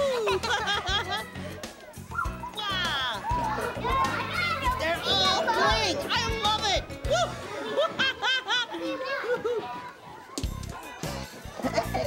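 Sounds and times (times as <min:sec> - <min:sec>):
background music: 0:00.0 - 0:08.3, 0:10.4 - 0:12.0
children squealing excitedly: 0:02.1 - 0:07.7.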